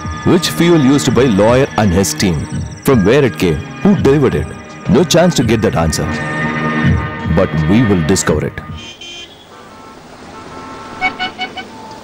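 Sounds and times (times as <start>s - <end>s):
traffic noise: 5.9s - 12.0s
vehicle horn short toots: 8.7s - 11.8s.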